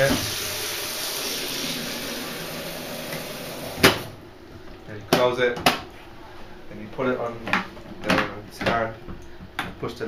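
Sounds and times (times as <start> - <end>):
tap water running into kettle: 0.0 - 4.0.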